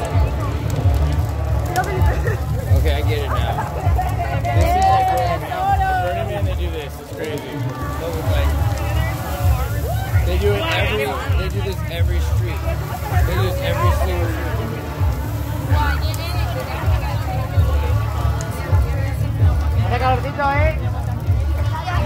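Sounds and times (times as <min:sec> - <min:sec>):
crowd voices and shouts: 0:00.0 - 0:22.0
fire rumbling: 0:00.0 - 0:22.0.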